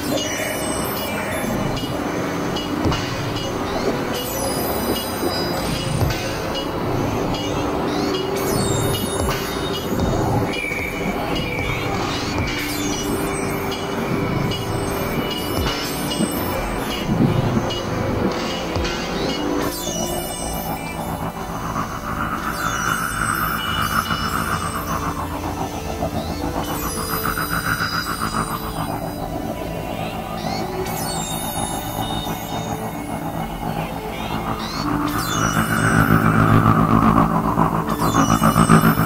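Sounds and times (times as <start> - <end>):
electronic synthesizer music: 0.0 - 39.0.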